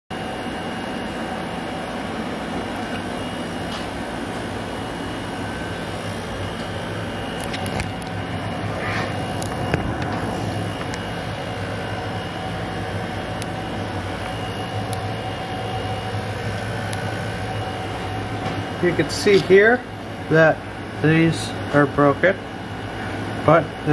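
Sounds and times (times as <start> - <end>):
machine hum and hiss: 0.1 - 23.9.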